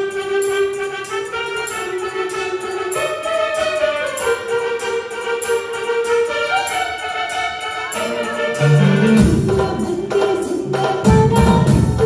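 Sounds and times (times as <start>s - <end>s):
light cymbal beat: 0.0s - 12.0s
live band playing a film song: 0.0s - 12.0s.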